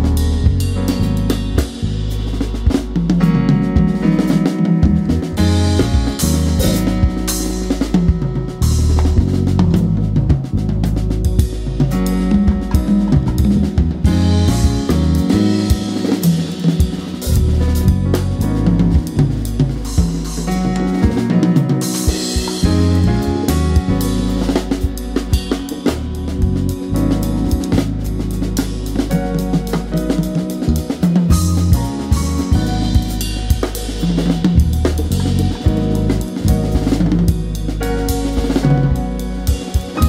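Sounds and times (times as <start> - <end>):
drum kit: 0.0 - 40.0
jazz band playing: 0.0 - 40.0.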